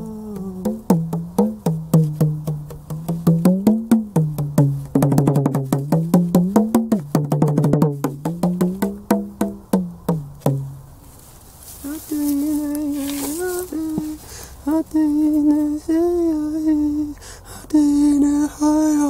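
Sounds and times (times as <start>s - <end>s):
hand drum played with palms: 0.0s - 10.8s.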